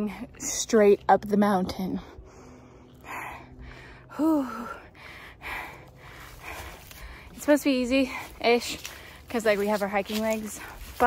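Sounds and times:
woman breathing hard: 0:02.1 - 0:07.4.

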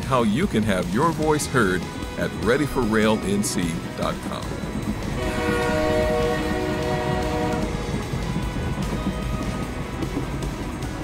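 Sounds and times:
train horn blast: 0:05.0 - 0:10.0.

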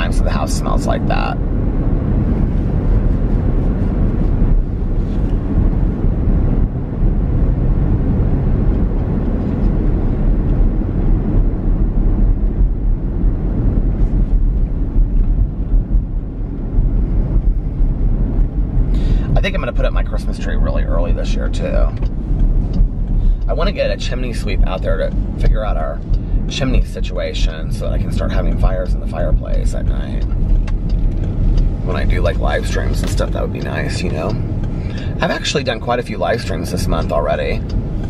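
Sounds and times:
car interior road rumble: 0:00.0 - 0:38.0.

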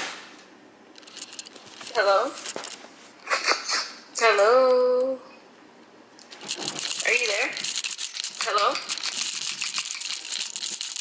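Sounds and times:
dense crackling and rustling: 0:01.0 - 0:03.1, 0:06.2 - 0:11.0.

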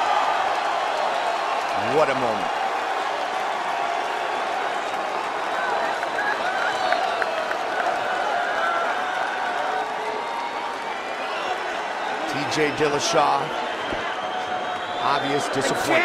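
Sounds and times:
crowd cheering and applauding: 0:00.0 - 0:16.0.

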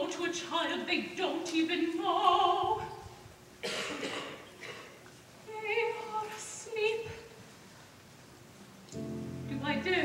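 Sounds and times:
person coughing: 0:03.6 - 0:05.0.

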